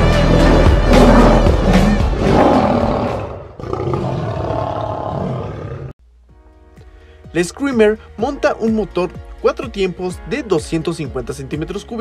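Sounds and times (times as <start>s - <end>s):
loud music: 0.0s - 3.2s
lion roar: 0.0s - 6.0s.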